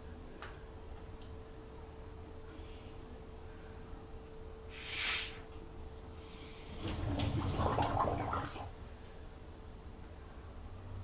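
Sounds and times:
water gurgling: 6.7s - 8.8s.

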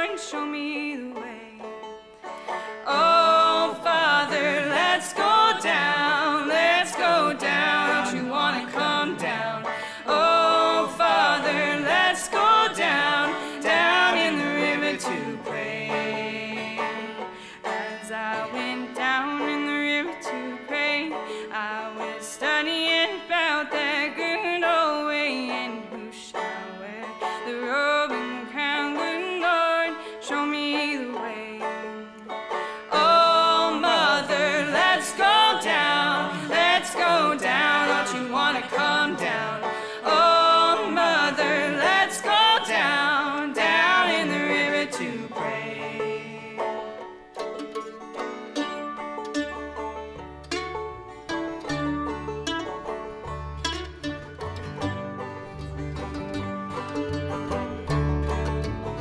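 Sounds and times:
acoustic string band playing: 0.0s - 59.0s
lead voice and harmony singing: 2.6s - 32.2s, 32.8s - 47.3s.

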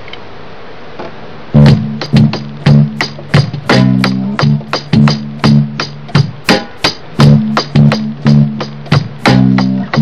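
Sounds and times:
electronic drum beat: 1.6s - 10.0s.

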